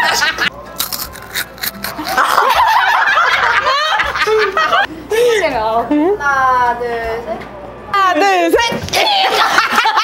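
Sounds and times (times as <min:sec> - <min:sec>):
women laughing: 0:00.0 - 0:00.5, 0:02.0 - 0:05.5, 0:09.0 - 0:10.0.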